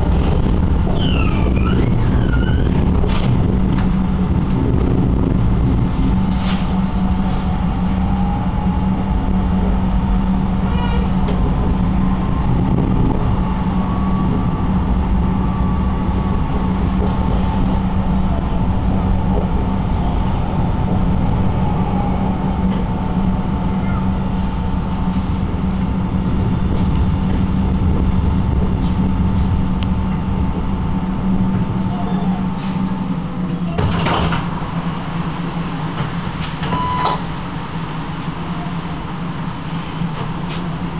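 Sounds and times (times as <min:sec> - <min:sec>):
low motor hum: 0:00.0 - 0:40.9
tram running on rails: 0:00.0 - 0:40.9.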